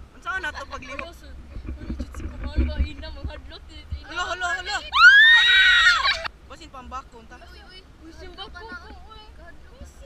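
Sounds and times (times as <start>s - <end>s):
teenagers shouting and laughing: 4.4s - 6.3s
loud high-pitched scream: 4.9s - 6.3s.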